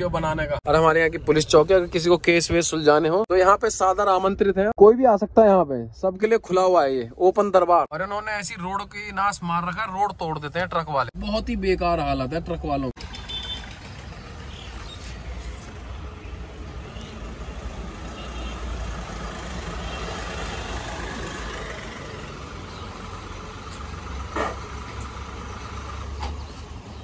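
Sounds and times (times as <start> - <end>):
diesel engine running: 13.0 - 27.0.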